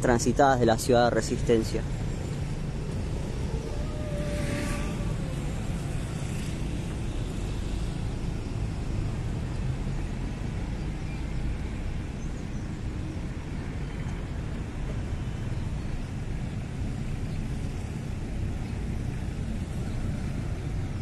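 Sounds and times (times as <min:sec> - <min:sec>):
road traffic rumble: 0:00.0 - 0:21.0
brief falling whine: 0:03.5 - 0:06.6.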